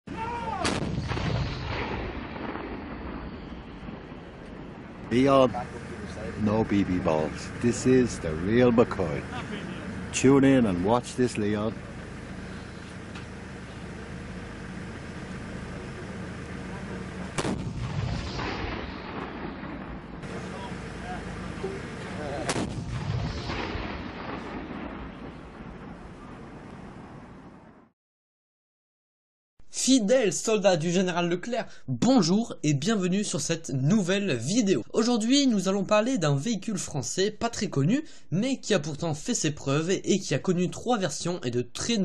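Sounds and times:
cannon shot: 0:00.5 - 0:05.1, 0:17.2 - 0:26.4
low rumbling echo: 0:00.6 - 0:12.8, 0:16.0 - 0:27.5
low engine hum: 0:04.5 - 0:23.1.

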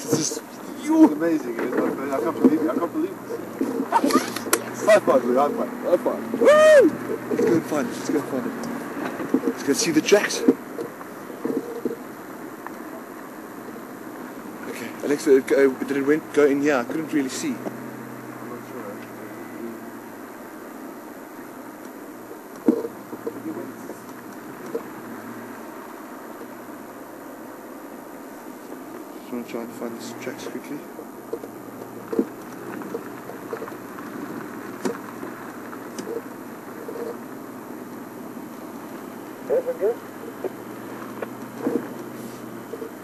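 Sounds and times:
vehicle engine running: 0:00.0 - 0:43.0.

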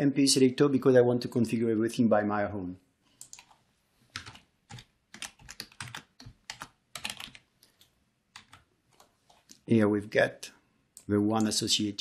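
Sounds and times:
computer keyboard typing: 0:03.2 - 0:09.6, 0:11.0 - 0:11.6.

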